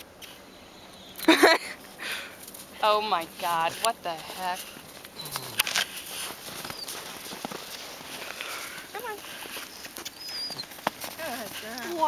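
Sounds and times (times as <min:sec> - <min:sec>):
hoofsteps on snow: 0:02.4 - 0:12.0
people's voices: 0:05.2 - 0:05.8.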